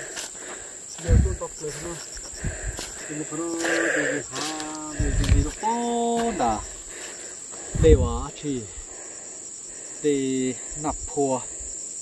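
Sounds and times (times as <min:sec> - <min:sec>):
forest insects droning: 0:00.0 - 0:12.0.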